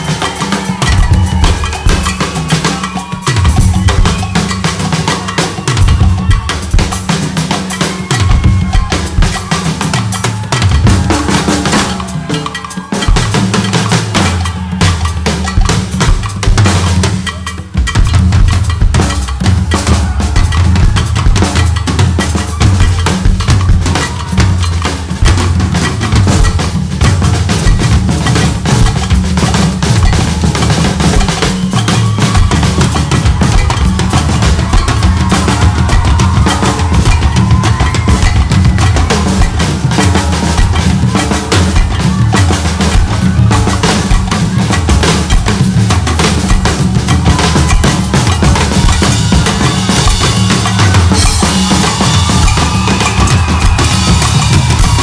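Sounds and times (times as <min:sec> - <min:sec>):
drum kits playing duet: 0:00.0 - 0:55.0.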